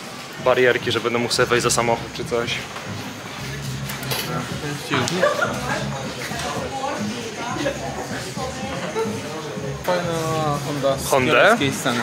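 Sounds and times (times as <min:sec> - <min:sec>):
indistinct voices: 0:00.4 - 0:12.0.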